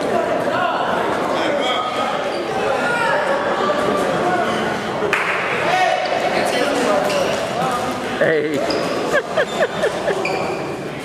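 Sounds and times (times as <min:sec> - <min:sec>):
many voices chattering: 0:00.0 - 0:11.0.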